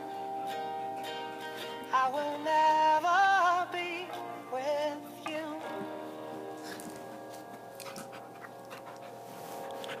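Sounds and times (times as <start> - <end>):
dog panting: 7.7 - 10.0.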